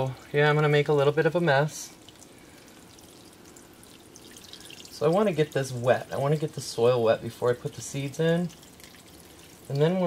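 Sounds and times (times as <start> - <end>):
water sprinkling onto soil: 0.4 - 10.0.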